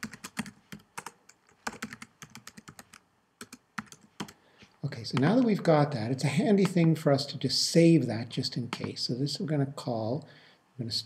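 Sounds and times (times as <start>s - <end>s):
typing on computer keyboard: 0.0s - 4.4s.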